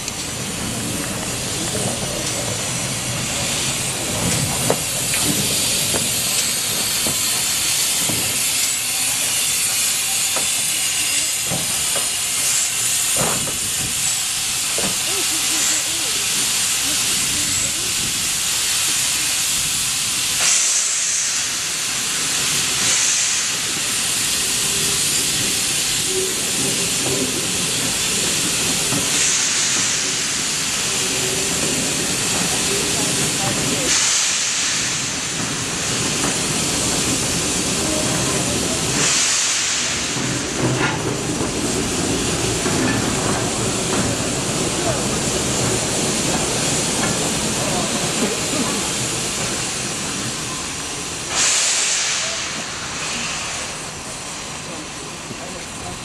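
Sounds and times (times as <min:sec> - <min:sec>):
steam locomotive hissing: 0:00.0 - 0:56.0.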